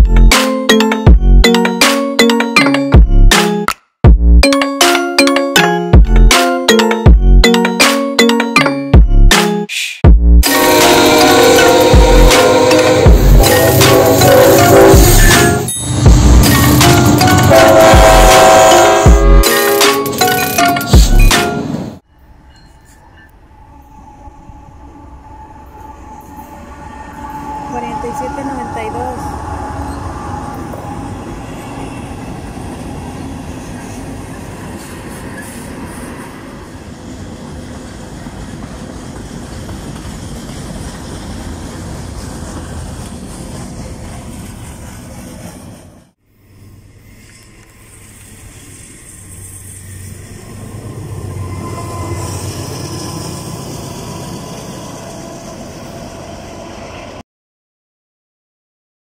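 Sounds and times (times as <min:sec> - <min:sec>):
diesel locomotive passing: 0:10.4 - 0:57.2
freight cars rumbling and rattling: 0:11.8 - 0:18.5.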